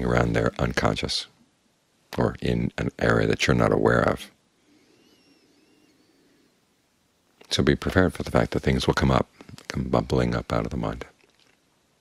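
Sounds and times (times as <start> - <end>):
faint high gliding whistles: 4.6 - 6.8.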